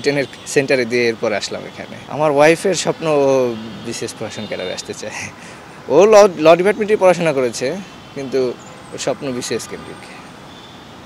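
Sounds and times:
distant road traffic: 0.0s - 11.0s.

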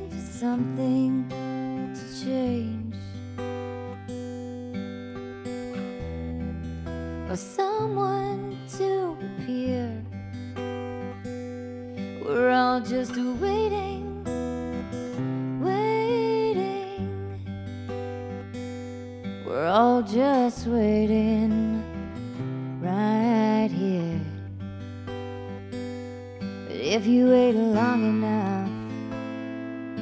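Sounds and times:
woman singing: 0.0s - 3.9s, 5.7s - 10.9s, 12.0s - 18.1s, 19.3s - 24.6s, 25.8s - 30.0s
acoustic guitar chords: 0.0s - 30.0s.

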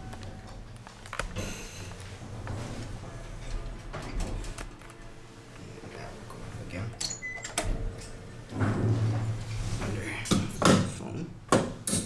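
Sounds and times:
elevator doors sliding shut: 7.1s - 9.8s.

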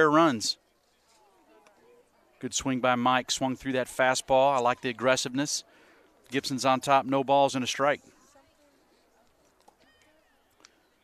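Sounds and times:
faint ballpark ambience: 0.0s - 11.0s
commentary speech: 1.4s - 5.7s, 6.3s - 8.2s.

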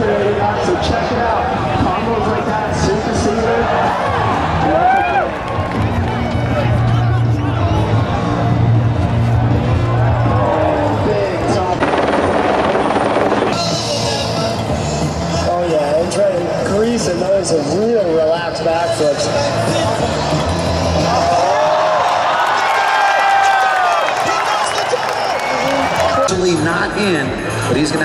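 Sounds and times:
music over loudspeakers: 0.0s - 4.8s, 5.7s - 21.5s, 25.8s - 28.0s
crowd cheering: 0.0s - 14.1s, 19.5s - 26.6s.

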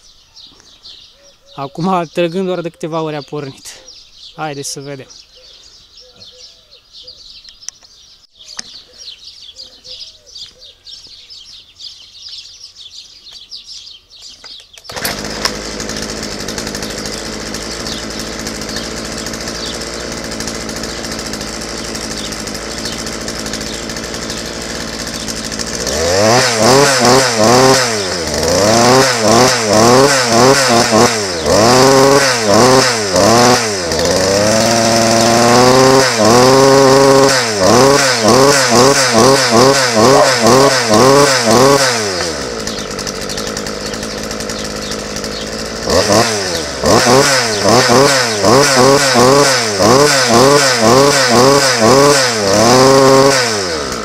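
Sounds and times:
chainsaw engine revving: 14.7s - 54.0s.

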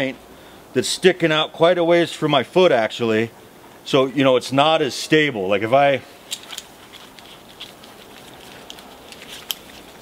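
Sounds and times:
faint rustling: 6.0s - 10.0s
light clicks of climbing hardware: 6.3s - 9.9s.

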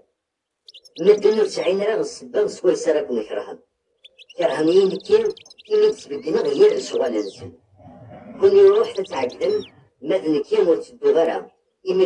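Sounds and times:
small birds chirping: 0.0s - 12.0s
person reading aloud: 1.0s - 3.6s, 4.3s - 12.0s.

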